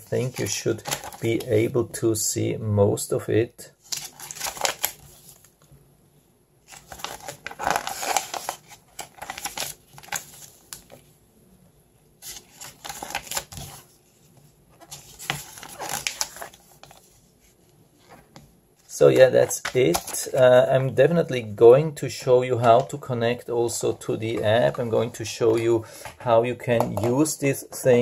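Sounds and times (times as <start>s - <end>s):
paper pages rustling: 0.0s - 1.7s, 3.8s - 5.5s, 6.7s - 11.1s, 12.2s - 20.7s.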